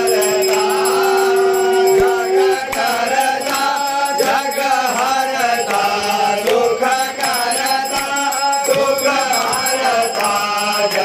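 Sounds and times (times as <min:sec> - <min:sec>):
steady held tone: 0:00.0 - 0:10.8
men singing a hymn in unison: 0:00.0 - 0:11.0
regular percussive strikes: 0:00.0 - 0:11.0.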